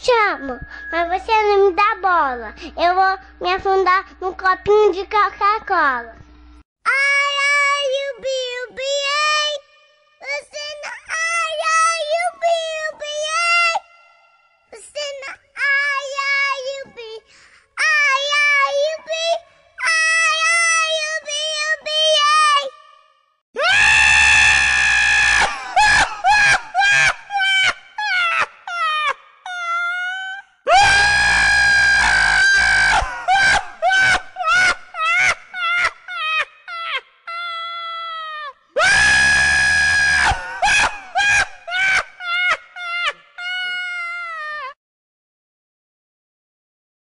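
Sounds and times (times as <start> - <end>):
drawn-out wail: 23.6 - 27.8, 30.7 - 36.2, 38.8 - 43.0
high-pitched voice screaming: 23.6 - 44.8.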